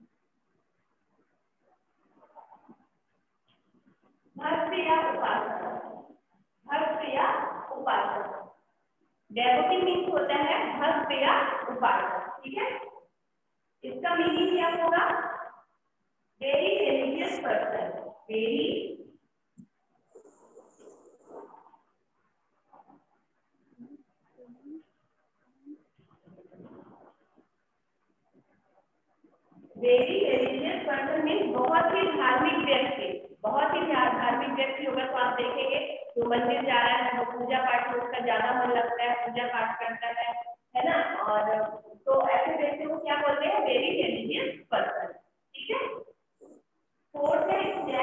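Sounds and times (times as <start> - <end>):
woman speaking: 4.4 - 6.0, 6.7 - 8.5, 9.3 - 13.0, 13.8 - 15.6, 16.4 - 19.1, 29.8 - 46.1, 47.1 - 48.0.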